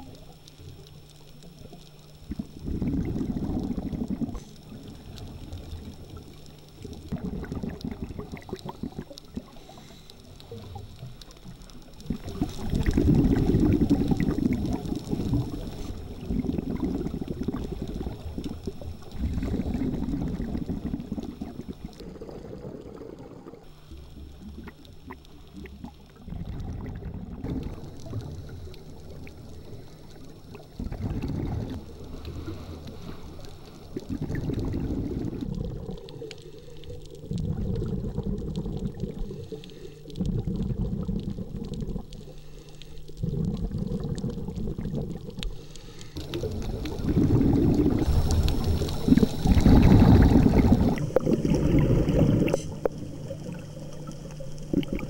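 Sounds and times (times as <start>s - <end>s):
bubbles gurgling underwater: 0.0s - 42.4s, 43.1s - 45.6s, 46.2s - 55.0s.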